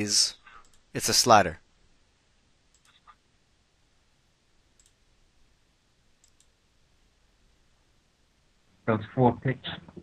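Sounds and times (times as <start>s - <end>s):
computer mouse clicks: 0.6s - 0.9s, 2.7s - 3.2s, 4.7s - 5.0s, 6.2s - 6.6s.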